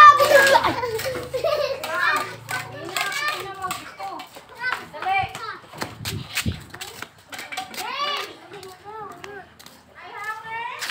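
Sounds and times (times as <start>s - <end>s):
children calling and chattering: 0.0s - 10.9s.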